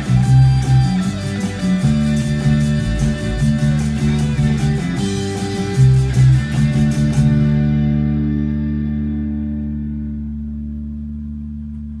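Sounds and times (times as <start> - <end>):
electric bass notes ringing: 0.0 - 12.0.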